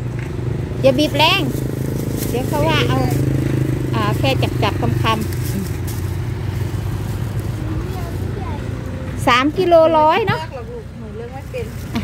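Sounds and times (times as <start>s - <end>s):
vehicle engine humming: 0.0s - 12.0s
person speaking: 2.2s - 3.3s.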